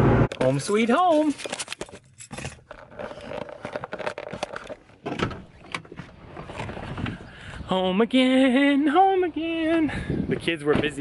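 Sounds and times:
clicks knocks and rubbing: 0.4 - 7.2
handheld camera jostling: 0.4 - 7.3.

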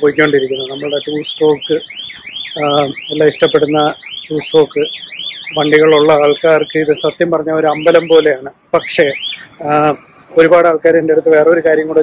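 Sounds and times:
man talking: 0.0 - 1.9, 2.6 - 4.9, 5.5 - 12.0
electronic alarm warbling: 0.0 - 10.0.

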